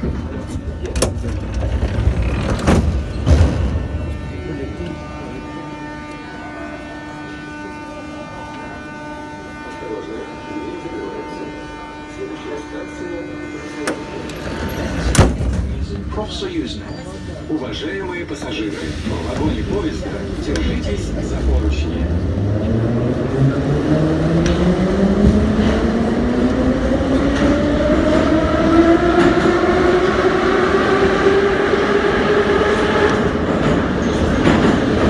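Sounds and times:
train clunks: 0.0 - 6.3, 13.6 - 17.4, 18.2 - 22.0, 24.2 - 30.5, 31.7 - 35.0
train rumble: 0.0 - 35.0.

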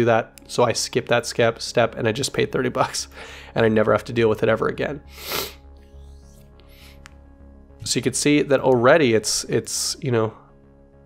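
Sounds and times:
short sharp breath: 5.1 - 5.6.

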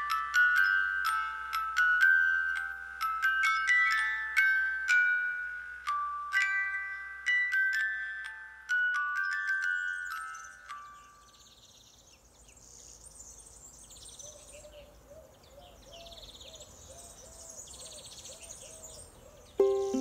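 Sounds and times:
glockenspiel-like chime: 0.0 - 12.0, 19.6 - 20.0
songbirds singing: 9.2 - 20.0
plucked ukulele music: 19.6 - 20.0.

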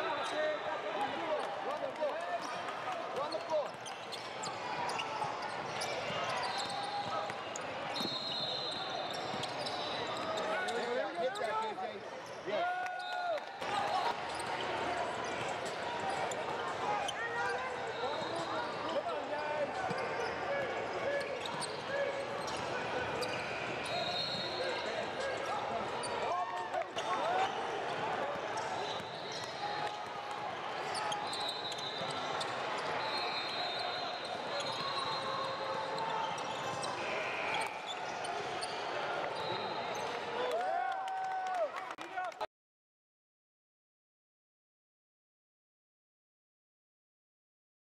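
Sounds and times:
echoing crowd voices: 0.0 - 12.8, 13.5 - 40.8
sneakers squeaking: 3.3 - 12.4, 14.0 - 26.3, 26.9 - 30.0, 30.8 - 40.2.

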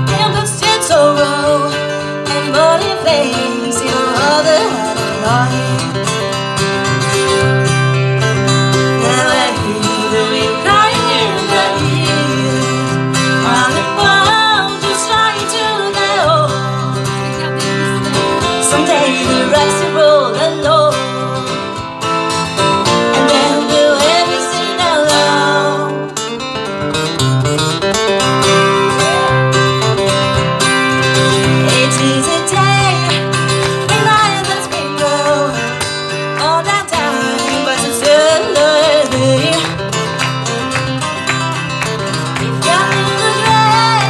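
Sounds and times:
person singing: 0.0 - 6.1, 8.9 - 16.6, 17.2 - 21.4, 23.0 - 26.1, 28.9 - 29.5, 31.4 - 35.8, 36.4 - 39.7, 42.4 - 44.0
acoustic guitars strumming: 0.0 - 44.0.

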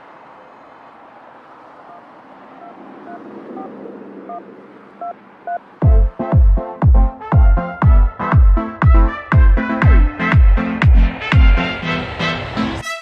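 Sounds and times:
city traffic hum: 0.0 - 13.0
phone keypad dialing tones: 5.0 - 5.6
electronic kick drum: 5.8 - 11.7.

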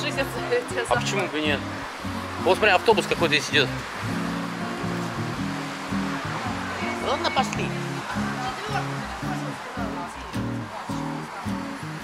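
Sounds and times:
background music with bass: 0.0 - 12.0
light outdoor hiss: 0.0 - 12.0.

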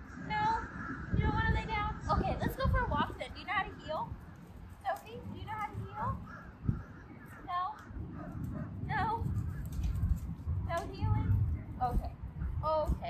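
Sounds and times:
crow cawing: 0.0 - 1.5, 6.1 - 7.4.

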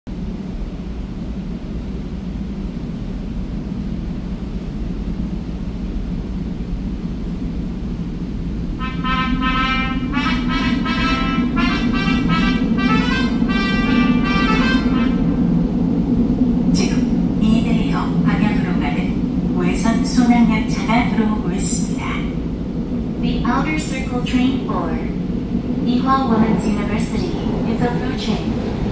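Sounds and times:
train approaching in tunnel: 0.1 - 28.9
recorded announcement voice: 16.7 - 22.4, 23.2 - 28.9.

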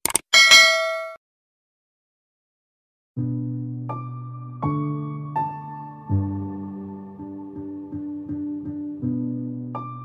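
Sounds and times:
bright bell ding: 0.3 - 1.2.

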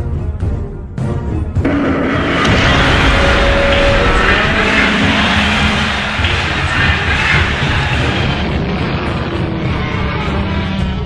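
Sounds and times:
loud steady rushing noise: 1.7 - 8.9.

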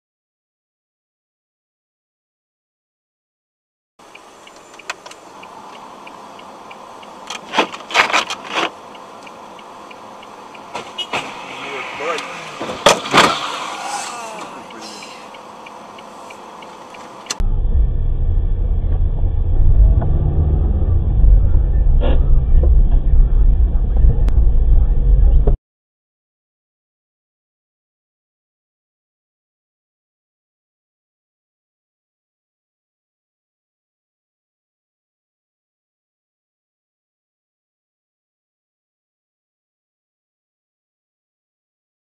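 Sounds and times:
car rumbling on the move: 4.0 - 25.6.

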